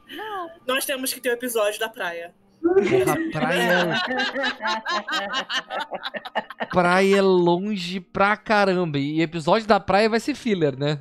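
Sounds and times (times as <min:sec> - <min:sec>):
people laughing: 0:02.7 - 0:07.4.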